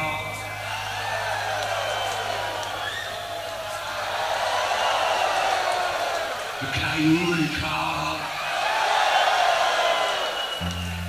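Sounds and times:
low sustained bass note: 0.0s - 3.4s
audience cheering: 0.0s - 11.0s.

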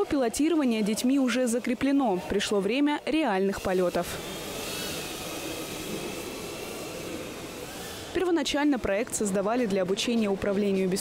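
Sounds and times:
drone motors whining: 1.3s - 9.0s
rushing air hiss: 4.1s - 8.2s.

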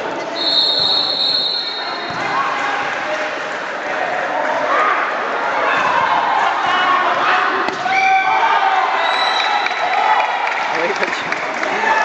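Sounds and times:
referee's whistle blast: 0.4s - 2.1s.

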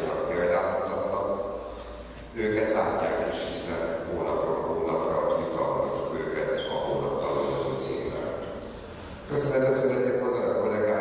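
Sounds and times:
man speaking over pa system: 0.0s - 11.0s.

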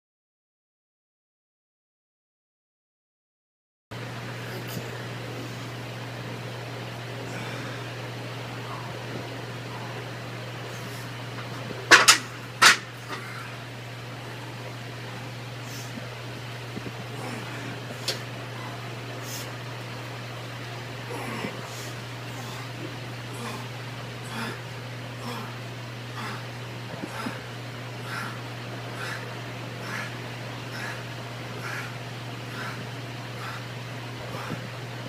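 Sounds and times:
low ventilation hum: 3.9s - 35.0s
dumbbells clanking on metal rack: 11.9s - 13.2s.

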